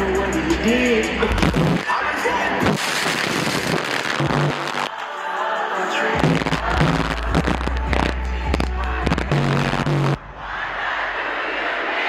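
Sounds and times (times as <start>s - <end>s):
deep bass line: 0.0s - 1.9s, 6.2s - 10.3s
loud live concert music: 0.0s - 10.3s.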